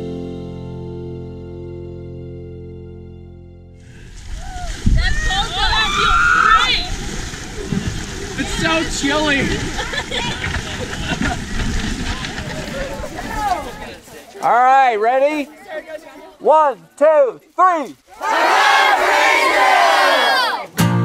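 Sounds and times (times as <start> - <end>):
water splashing and sloshing: 3.9 - 14.3
people shouting excitedly: 4.4 - 7.0, 18.1 - 20.7.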